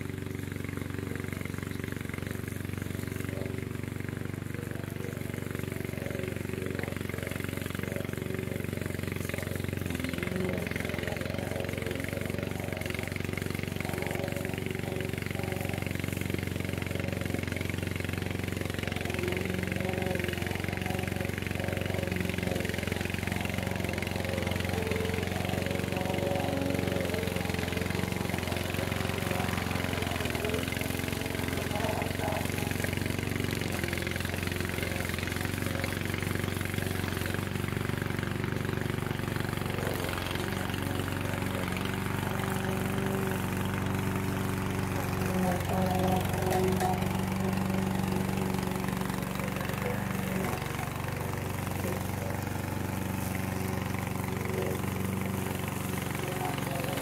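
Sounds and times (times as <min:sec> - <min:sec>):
lawn mower engine cutting grass: 0:00.0 - 0:57.0.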